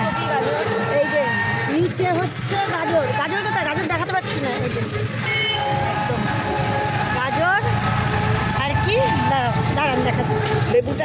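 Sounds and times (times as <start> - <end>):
electric rickshaw rumbling: 0.0 - 11.0.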